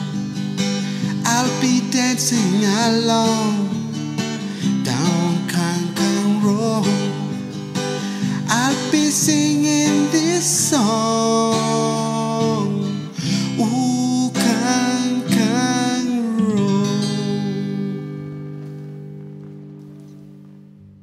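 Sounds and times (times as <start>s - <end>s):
acoustic guitar: 0.0s - 21.0s
person singing: 1.0s - 4.0s, 4.8s - 7.5s, 8.3s - 18.4s.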